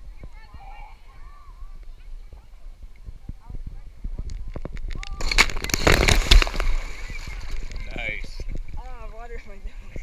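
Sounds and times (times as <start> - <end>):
loud splash into water: 5.2 - 7.9.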